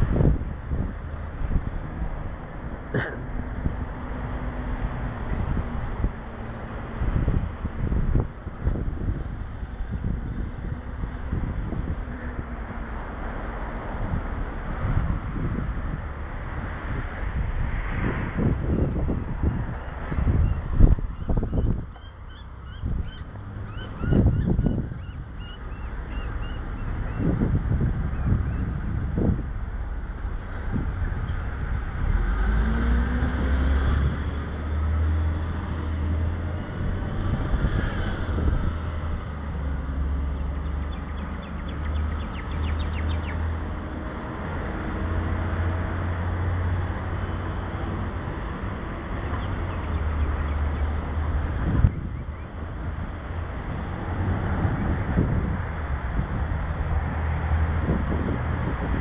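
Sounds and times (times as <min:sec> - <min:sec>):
motor vehicle engine hum: 0:00.0 - 0:59.0
wind rushing over microphone: 0:00.0 - 0:59.0.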